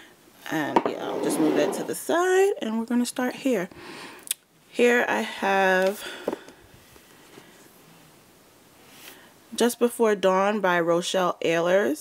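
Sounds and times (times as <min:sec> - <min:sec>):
book sliding off shelf: 0:01.0 - 0:02.0.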